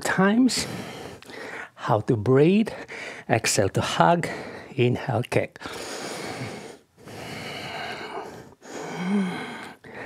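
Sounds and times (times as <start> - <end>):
man breathing heavily: 0.5 - 1.8, 2.7 - 3.3, 4.2 - 4.8, 5.6 - 10.0.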